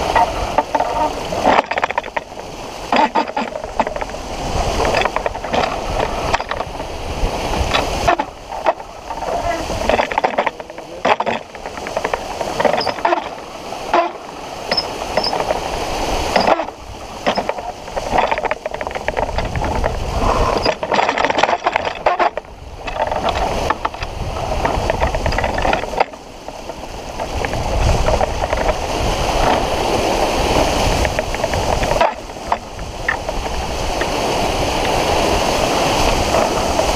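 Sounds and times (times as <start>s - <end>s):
water splashing along hull: 0.0s - 36.9s
wind buffeting microphone: 0.0s - 36.9s.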